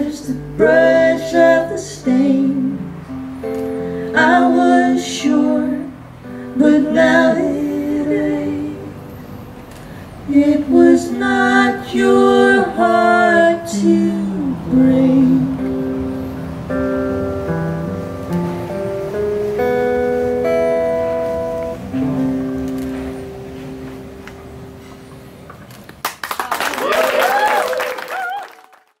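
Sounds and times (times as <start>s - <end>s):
keyboard and acoustic guitar chords: 14.4s - 25.5s
audience clapping and cheering: 26.0s - 29.0s.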